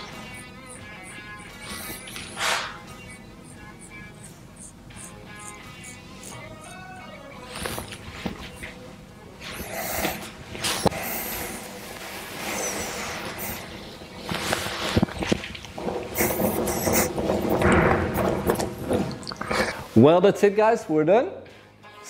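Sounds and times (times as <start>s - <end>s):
faint background music: 0.0s - 22.0s.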